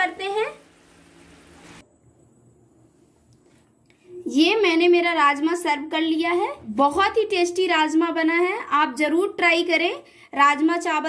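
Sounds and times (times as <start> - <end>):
faint steady hiss: 0.0 - 4.3.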